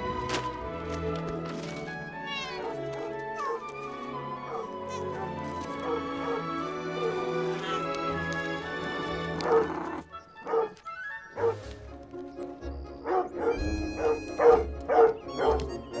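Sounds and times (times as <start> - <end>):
film score music: 0.0 - 16.0
large dog barking: 9.4 - 9.7, 13.0 - 15.6.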